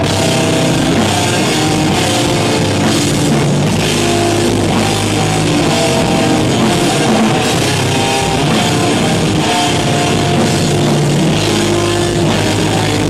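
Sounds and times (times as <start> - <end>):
metal band playing live: 0.0 - 13.0.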